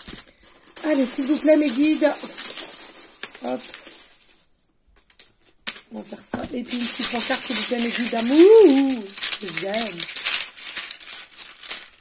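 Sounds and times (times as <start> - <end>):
small charms clicking and rattling: 0.0 - 4.2, 5.0 - 12.0.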